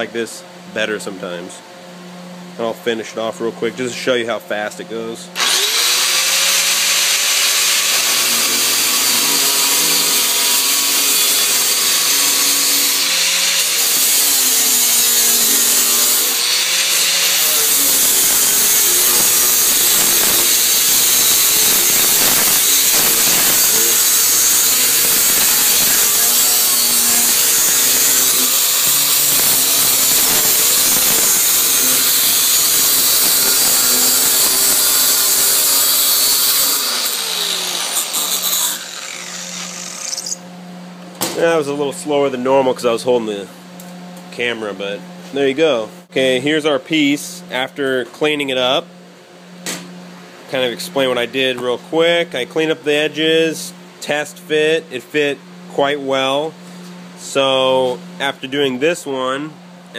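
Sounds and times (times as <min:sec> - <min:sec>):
angle grinder cutting sheet steel: 0:05.4 - 0:40.4.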